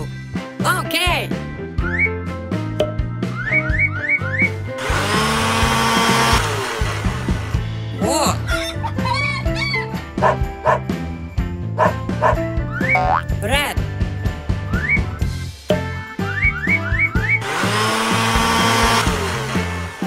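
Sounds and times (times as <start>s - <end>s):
bouncy cartoon music: 0.0s - 20.0s
blender whirring: 4.8s - 7.6s, 17.4s - 20.0s.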